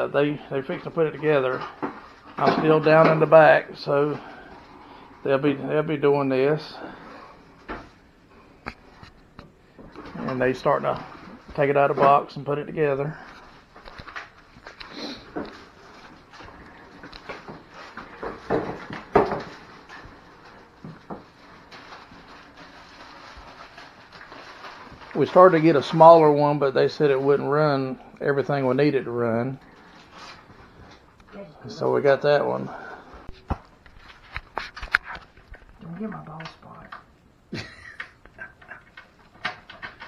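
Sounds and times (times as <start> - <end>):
plastic wrap rustling: 9.9 - 31.2, 33.2 - 36.8.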